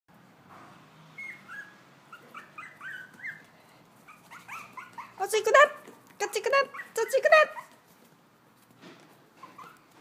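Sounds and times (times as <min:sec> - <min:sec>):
puppy whimpering: 0:01.2 - 0:07.8, 0:09.3 - 0:10.0.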